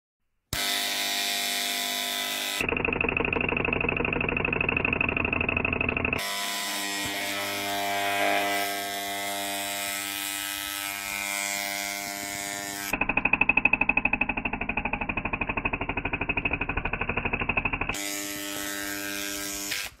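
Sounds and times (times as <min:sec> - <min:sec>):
electrical arcing buzz: 0:00.6 - 0:02.8, 0:05.6 - 0:13.4, 0:17.8 - 0:20.0.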